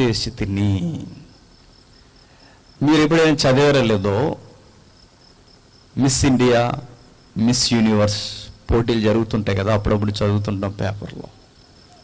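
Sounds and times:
man speaking into a microphone: 0.0s - 1.3s, 2.8s - 4.6s, 6.0s - 11.4s
faint crickets chirping: 0.0s - 12.0s.

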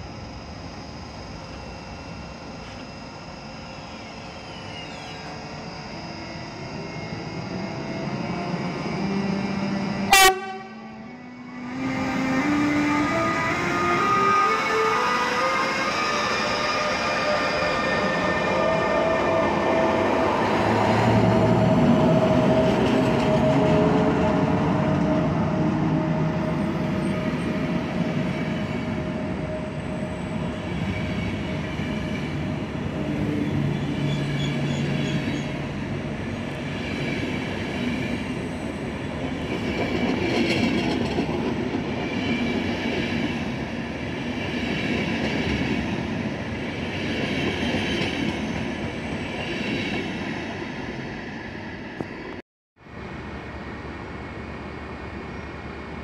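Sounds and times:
electric locomotive whine: 0.0s - 56.0s
train wheels rumbling on rails: 15.3s - 51.0s.

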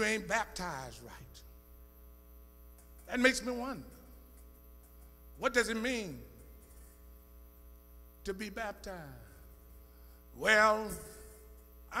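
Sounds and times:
man speaking: 0.0s - 1.5s, 3.1s - 4.0s, 5.4s - 6.4s, 8.2s - 9.4s, 10.4s - 12.0s
electrical mains hum: 0.0s - 12.0s.

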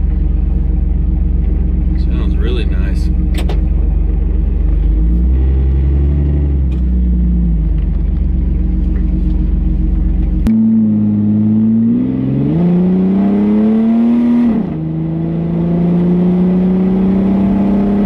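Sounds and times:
car engine while driving: 0.0s - 18.0s.

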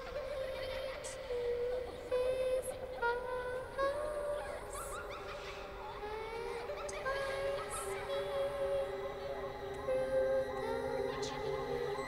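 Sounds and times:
eerie gliding tone: 4.4s - 12.0s.

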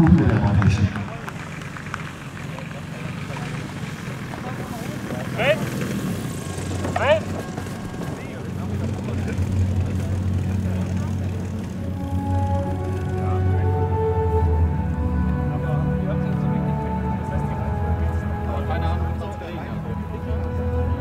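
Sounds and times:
model aircraft engine drone: 0.0s - 21.0s.

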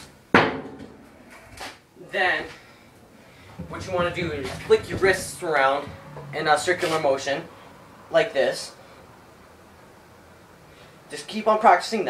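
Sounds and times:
faint knock: 3.4s - 6.3s.

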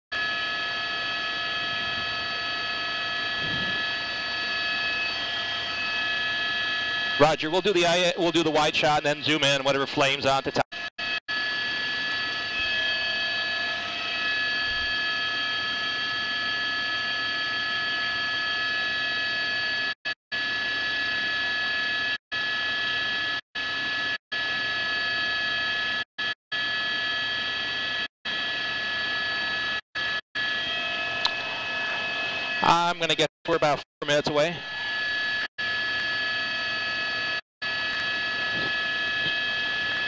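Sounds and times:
helicopter engine whine and hiss: 0.2s - 9.4s, 10.8s - 26.0s, 26.6s - 32.8s, 34.6s - 40.0s.

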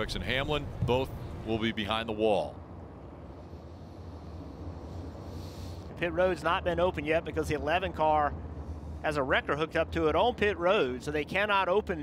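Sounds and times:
faint hiss: 3.2s - 6.5s.

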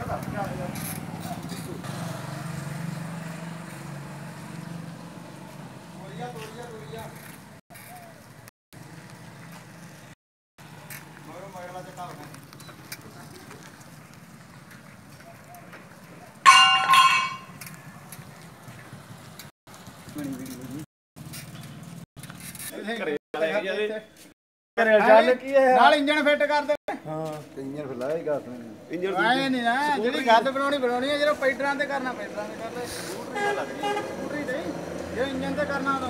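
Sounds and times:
small motorbike engine humming: 0.9s - 7.4s
ringing metallic tone: 16.5s - 17.8s.

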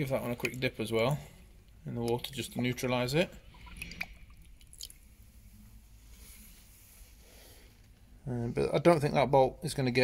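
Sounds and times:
small water splashes: 2.1s - 5.2s.

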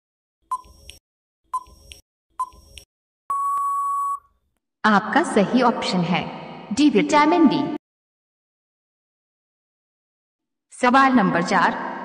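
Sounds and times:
short countdown beep: 3.3s - 4.2s
long steady beep: 3.3s - 4.3s.

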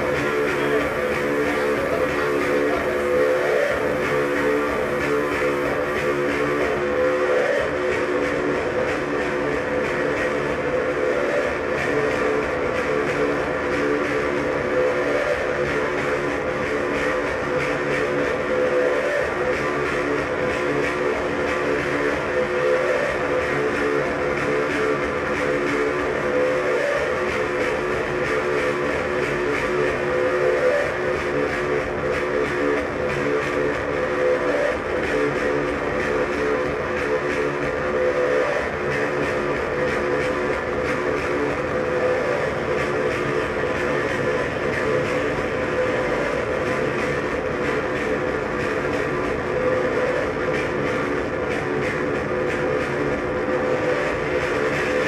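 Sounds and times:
rumbling machine-like noise: 0.0s - 55.0s.

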